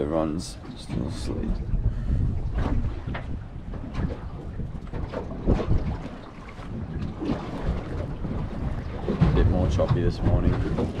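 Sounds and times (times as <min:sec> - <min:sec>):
water washing around hull: 0:00.0 - 0:11.0
wind buffeting microphone: 0:00.0 - 0:11.0.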